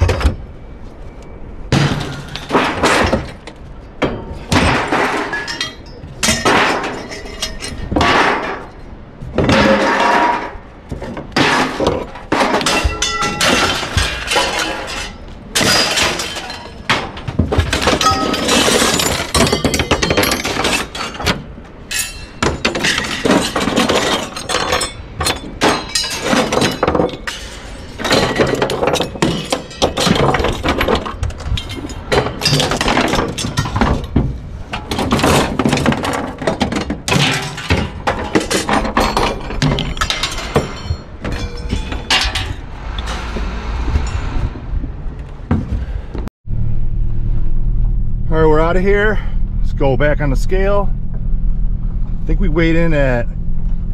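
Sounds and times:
scrap metal clanking onto pile: 1.7 - 43.2.

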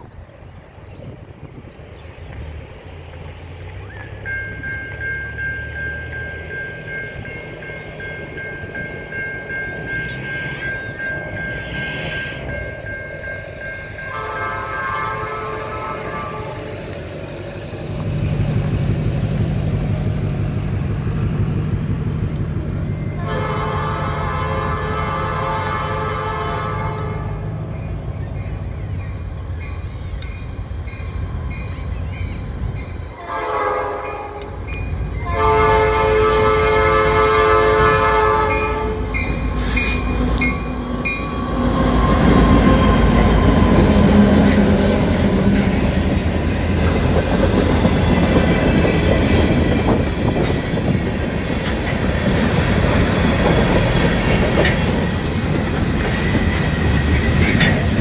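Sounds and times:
locomotive engine rumbling: 0.0 - 58.0
train wheels rumbling: 0.0 - 58.0
crossing bell ringing: 3.8 - 16.9, 22.6 - 25.4, 27.0 - 55.2
train air horn blasts: 10.0 - 10.9, 11.5 - 12.7, 14.0 - 16.8, 23.2 - 27.5, 33.2 - 34.6, 35.2 - 40.1.

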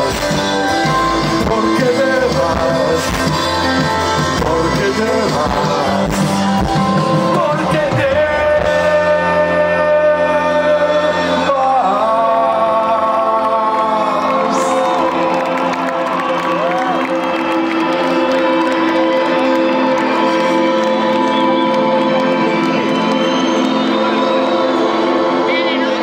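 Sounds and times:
live rock band playing chords: 0.0 - 26.0
crowd cheering and whooping: 12.8 - 26.0.

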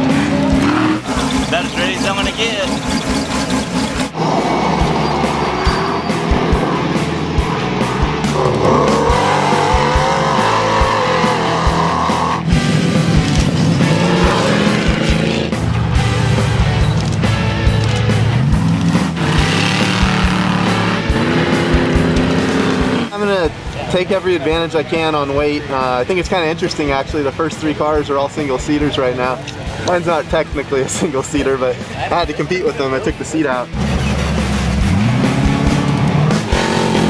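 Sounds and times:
race car engines revving: 0.0 - 23.8, 28.4 - 37.0
background music: 0.0 - 37.0.

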